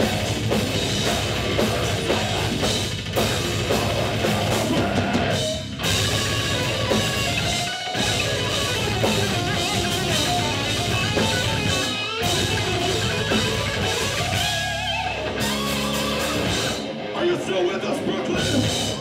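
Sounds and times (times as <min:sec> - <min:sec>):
drum kit: 0:00.0 - 0:17.2, 0:18.3 - 0:19.0
distorted electric guitar riffing: 0:00.0 - 0:19.0.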